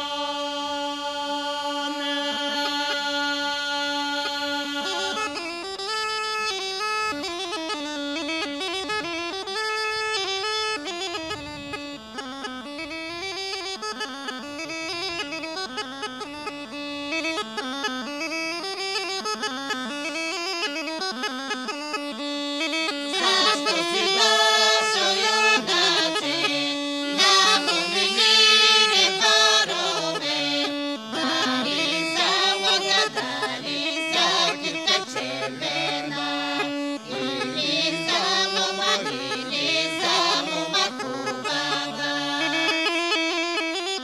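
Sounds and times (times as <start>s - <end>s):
bagpipe playing solo: 0.0s - 44.0s.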